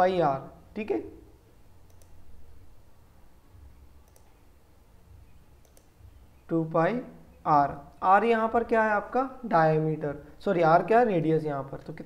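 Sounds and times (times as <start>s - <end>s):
faint mouse clicks: 1.9s - 2.2s, 4.0s - 4.4s, 5.6s - 6.0s.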